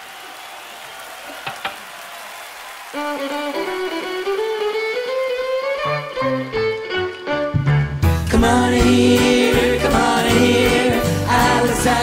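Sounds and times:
crowd and room noise: 0.0s - 7.3s.

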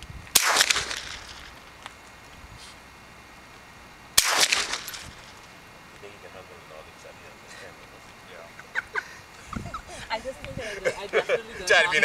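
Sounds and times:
rifle shot: 0.3s - 1.7s, 4.2s - 5.5s.

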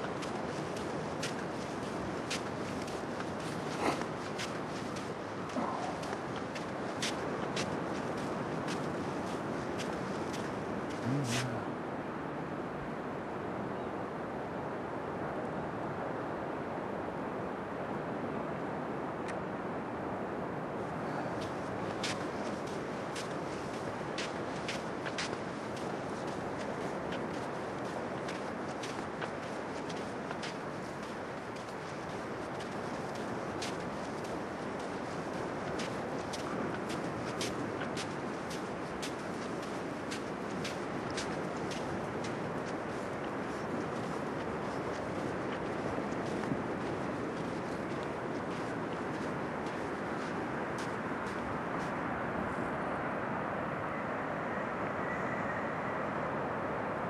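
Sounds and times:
steady rushing outdoor noise: 0.0s - 57.0s.

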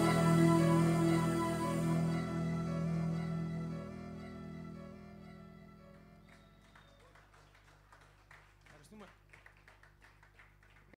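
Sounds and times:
audience applause: 6.2s - 11.0s.

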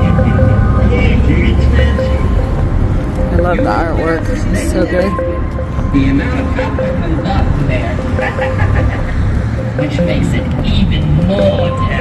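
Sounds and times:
low rumble of road traffic: 0.0s - 12.0s
voices talking: 0.0s - 12.0s.

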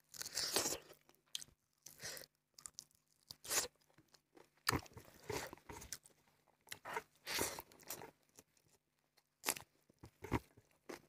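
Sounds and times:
person chewing food: 0.0s - 11.0s.

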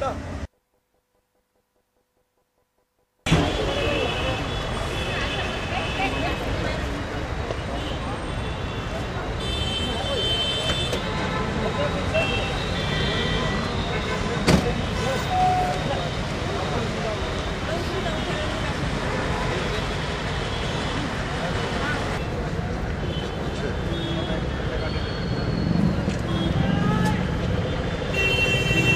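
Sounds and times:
street traffic: 0.0s - 1.1s, 2.8s - 28.9s
vehicle horns tooting: 7.7s - 16.2s, 23.0s - 28.9s.

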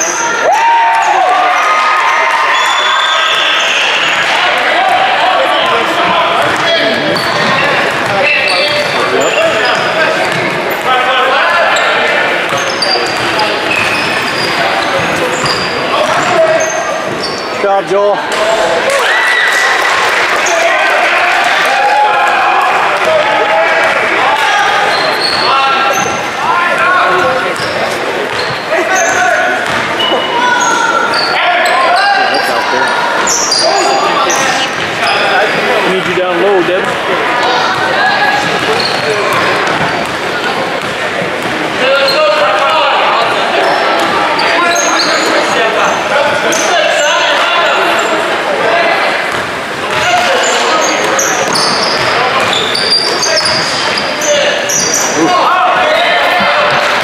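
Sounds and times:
echoing voices: 0.0s - 57.0s
basketball bouncing on hardwood floor: 6.4s - 9.0s.

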